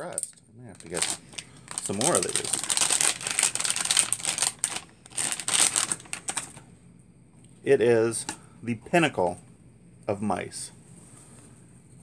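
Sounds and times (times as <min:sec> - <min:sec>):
plastic bag crinkling: 0:00.7 - 0:06.6.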